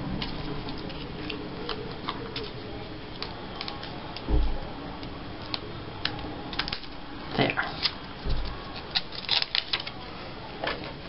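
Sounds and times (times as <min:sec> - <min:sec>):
paper rustling: 0:00.2 - 0:04.3, 0:05.4 - 0:10.1.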